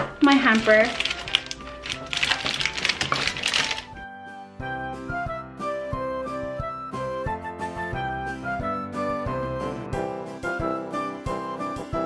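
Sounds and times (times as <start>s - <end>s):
light instrumental music: 0.0s - 12.0s
plastic packets crinkling: 0.2s - 4.0s.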